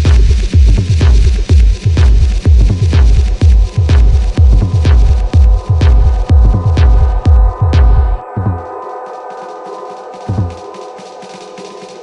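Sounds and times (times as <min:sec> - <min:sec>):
heavy kick drum: 0:00.0 - 0:08.7
techno music over speakers: 0:00.0 - 0:12.0.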